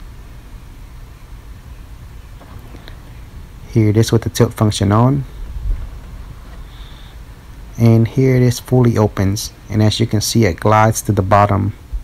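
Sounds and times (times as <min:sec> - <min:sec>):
faint hiss: 0:00.0 - 0:12.0
low rumble in car cabin: 0:01.4 - 0:12.0.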